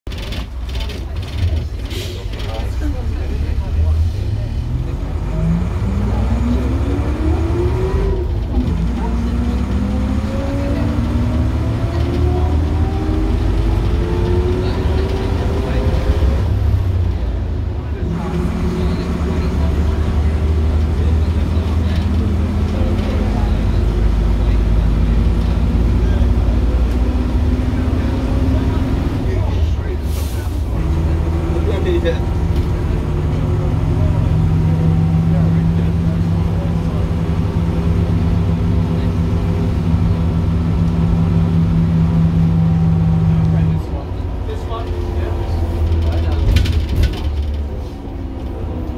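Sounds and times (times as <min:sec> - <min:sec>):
deep bus engine drone: 0:00.1 - 0:48.9.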